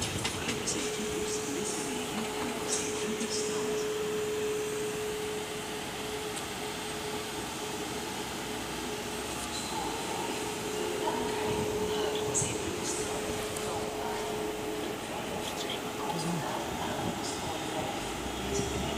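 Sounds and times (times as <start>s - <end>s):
electric train humming: 0.0s - 18.9s
rushing background noise: 0.0s - 18.9s.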